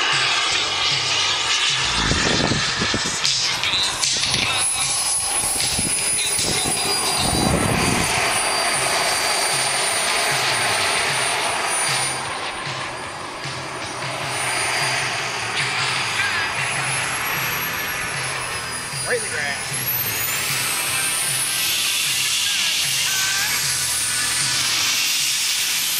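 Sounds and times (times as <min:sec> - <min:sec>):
low rumble: 0:00.0 - 0:24.9
model jet turbine whine: 0:00.0 - 0:25.9
rushing exhaust noise: 0:00.0 - 0:25.9.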